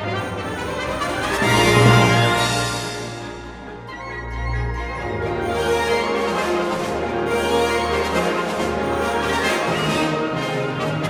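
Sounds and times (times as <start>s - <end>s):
brass instruments: 0.0s - 11.0s
symphony orchestra playing: 0.0s - 11.0s.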